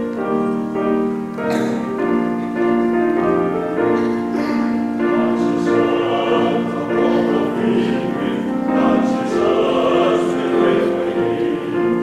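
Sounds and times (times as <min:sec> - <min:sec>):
male voice choir singing a hymn: 0:03.8 - 0:12.0.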